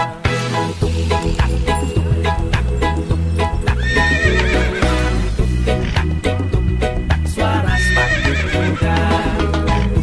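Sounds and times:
background music with steady beat: 0.0s - 10.0s
horse whinnying: 3.7s - 6.1s, 7.7s - 8.9s.

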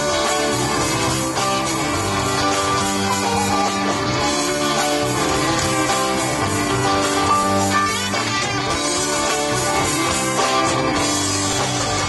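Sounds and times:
electric guitar: 0.0s - 12.0s
live country-rock band playing: 0.0s - 12.0s.

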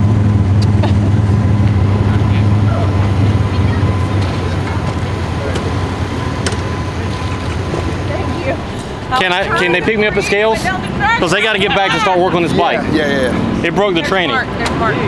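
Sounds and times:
low engine hum: 0.0s - 15.0s
faint distant voices: 1.5s - 15.0s.

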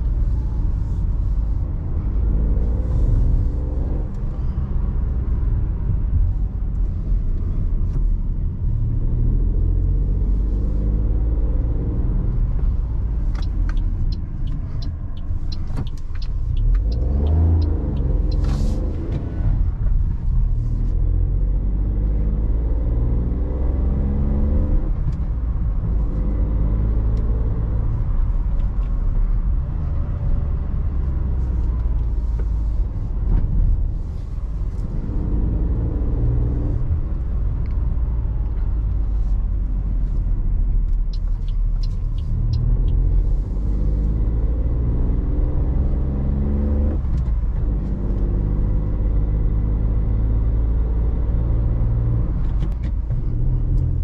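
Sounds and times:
car engine accelerating: 0.0s - 54.0s
low road rumble: 0.0s - 54.0s
light ticks: 13.2s - 19.3s, 40.0s - 43.3s.

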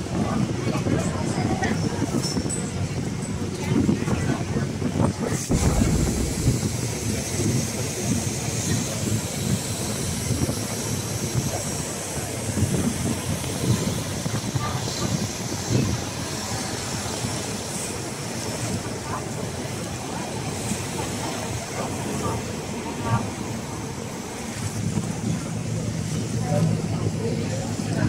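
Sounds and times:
water rushing along hull: 0.0s - 28.0s
boat engine running: 5.4s - 7.6s.

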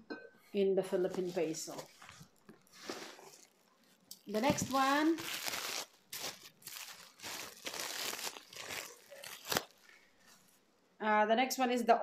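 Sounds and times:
plastic wrapping crinkling: 1.1s - 10.6s.

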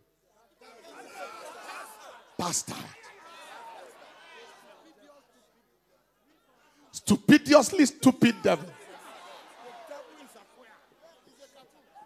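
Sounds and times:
congregation speaking together: 0.7s - 5.2s, 6.9s - 11.8s.

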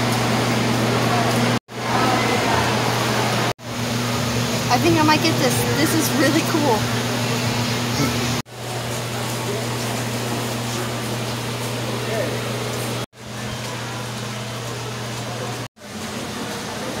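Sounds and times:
low fan hum: 0.0s - 17.0s.

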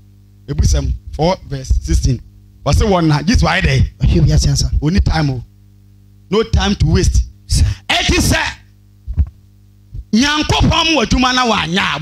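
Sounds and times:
public address system hum: 0.4s - 5.6s, 6.2s - 9.3s, 10.0s - 12.0s
man preaching through microphone: 0.5s - 5.4s, 6.3s - 8.7s, 10.1s - 12.0s.

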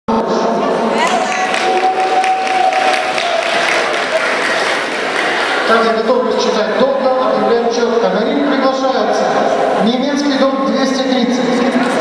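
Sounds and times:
audience applauding: 1.0s - 5.7s.

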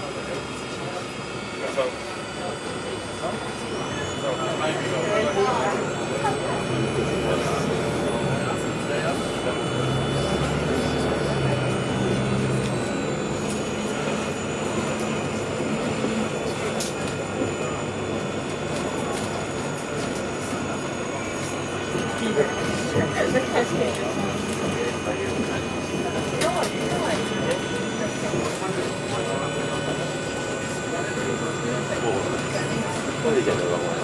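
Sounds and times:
bus engine and road noise: 0.0s - 34.0s
thin high whine: 0.2s - 34.0s.

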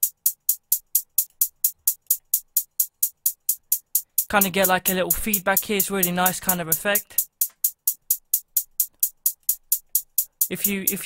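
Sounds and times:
closed hi-hat ticks: 0.0s - 11.0s.

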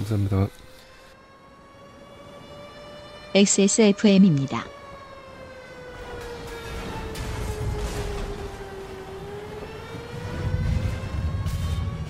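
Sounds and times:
siren-like tone gliding upward: 0.0s - 12.0s.

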